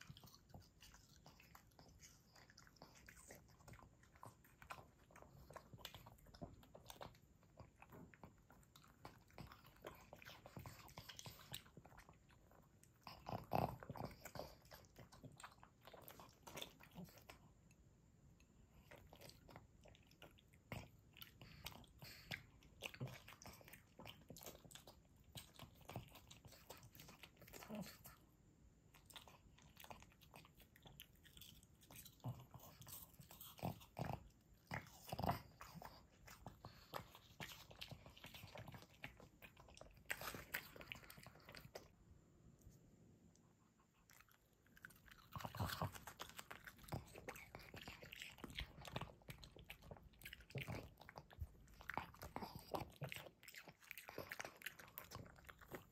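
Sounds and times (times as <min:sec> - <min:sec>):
dog chewing fruit: 0:00.0 - 0:17.6, 0:18.7 - 0:28.2, 0:28.9 - 0:42.0, 0:43.8 - 0:55.9.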